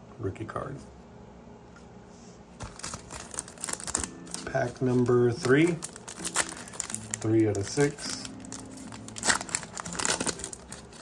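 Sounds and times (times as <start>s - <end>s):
foil wrapper crinkling: 2.6s - 11.0s.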